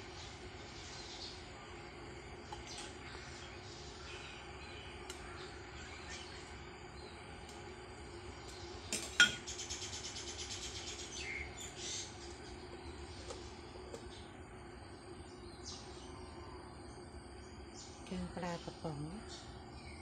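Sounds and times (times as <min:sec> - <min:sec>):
faint steady hum: 0:00.0 - 0:20.0
birds chirping: 0:02.5 - 0:20.0.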